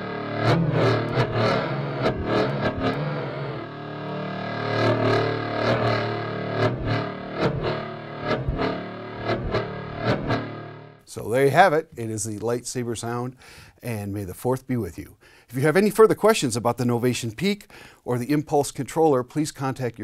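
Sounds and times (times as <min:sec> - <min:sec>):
lightsaber hum bending in pitch: 0:00.0 - 0:11.1.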